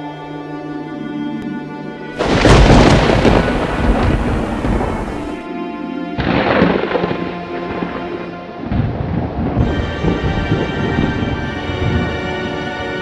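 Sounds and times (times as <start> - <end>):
eerie background music: 0.0 - 13.0
thunder crash rumbling: 2.2 - 5.4, 6.2 - 13.0.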